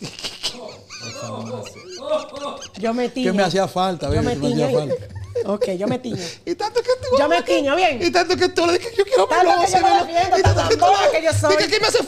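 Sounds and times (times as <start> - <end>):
people laughing: 0.0 - 7.7, 8.4 - 12.0
people talking: 0.6 - 12.0.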